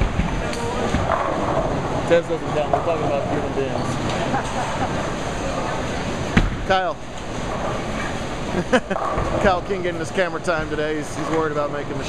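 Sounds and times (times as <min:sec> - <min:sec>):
bowling balls and pins: 0:00.0 - 0:09.7
people murmuring: 0:00.3 - 0:06.2
man laughing: 0:04.1 - 0:05.1, 0:08.5 - 0:09.0.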